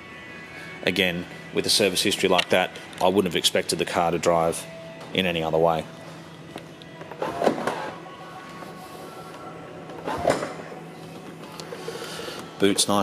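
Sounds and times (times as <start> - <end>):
quiet background music: 0.0 - 13.0.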